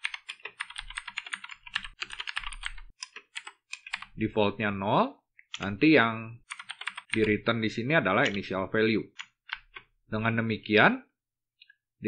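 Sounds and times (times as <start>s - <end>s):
keyboard typing: 0.0s - 4.2s, 6.4s - 7.4s, 8.2s - 8.5s, 9.1s - 9.9s.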